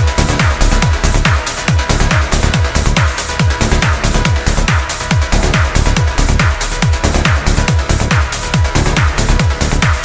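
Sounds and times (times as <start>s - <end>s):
hi-hats: 0.0s - 10.0s
kick drum: 0.0s - 10.0s
trance music: 0.0s - 10.0s.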